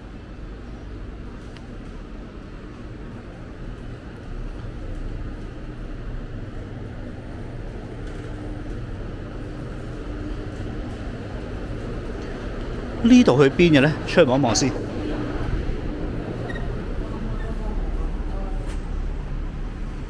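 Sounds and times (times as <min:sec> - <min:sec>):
ventilation hum and rumble: 0:00.0 - 0:20.0.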